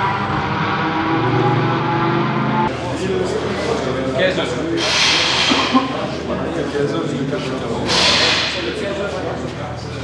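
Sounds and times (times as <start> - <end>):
indistinct background voices: 2.7 - 10.0.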